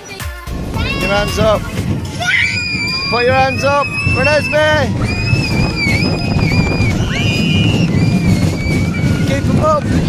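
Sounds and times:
roller coaster rumble: 0:00.0 - 0:10.0
high-pitched wheel squeals: 0:02.2 - 0:09.8.

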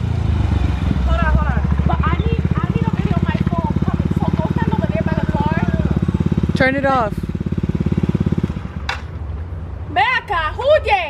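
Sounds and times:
motor scooter engine idling: 0:00.7 - 0:09.4.

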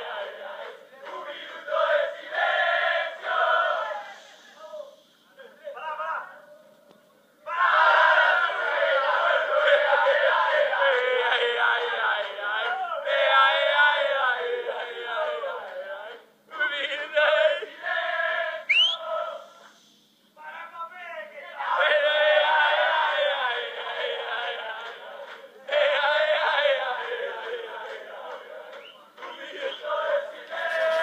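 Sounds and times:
sharp rising whistle: 0:18.7 - 0:19.1.

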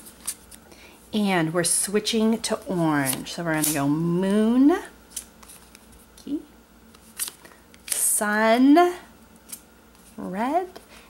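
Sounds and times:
playing cards clicking and sliding: 0:03.0 - 0:03.9, 0:05.1 - 0:06.0, 0:06.9 - 0:08.1.

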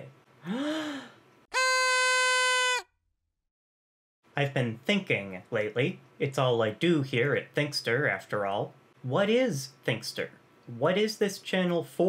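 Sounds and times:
breathy vocal gasp: 0:00.4 - 0:01.2
party horn buzzing: 0:01.5 - 0:02.8.

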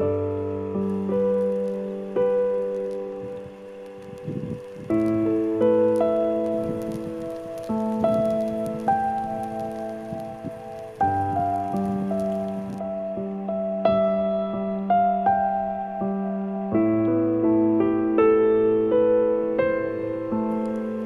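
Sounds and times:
slow piano chords: 0:00.0 - 0:21.0
rough noise: 0:00.7 - 0:13.0.

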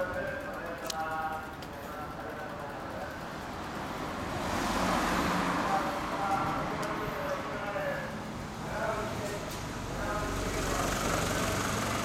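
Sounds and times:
vehicle passing by: 0:03.6 - 0:12.0.

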